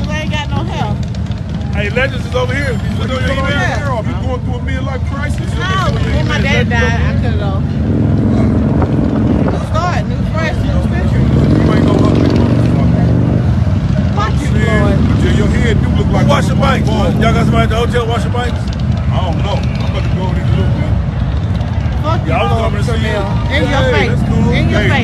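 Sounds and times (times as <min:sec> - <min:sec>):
people talking: 0:00.0 - 0:01.0, 0:01.8 - 0:07.7, 0:09.5 - 0:13.4, 0:14.1 - 0:21.0, 0:22.0 - 0:25.0
motorcycle engine running: 0:00.0 - 0:25.0.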